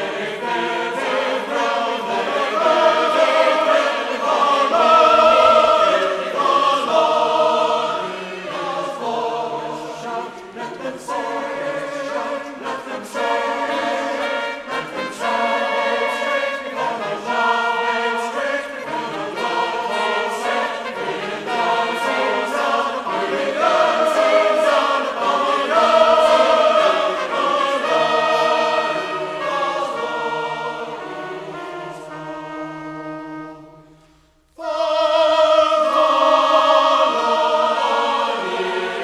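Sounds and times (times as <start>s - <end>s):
choir singing a hymn: 0.0s - 39.0s.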